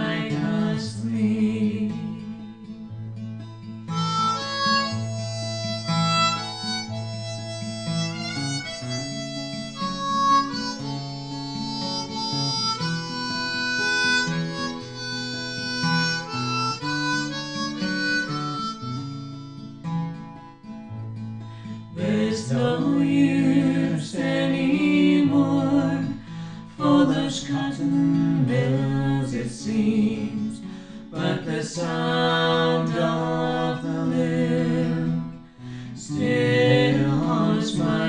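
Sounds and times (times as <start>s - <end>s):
acoustic guitar accompaniment: 0.0s - 38.0s
harmonica melody: 2.4s - 27.2s, 31.2s - 38.0s.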